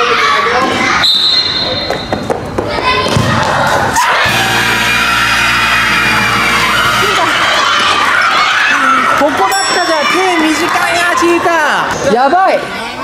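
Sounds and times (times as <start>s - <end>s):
crowd shouting and cheering: 0.0s - 13.0s
music sting chord: 4.3s - 7.3s.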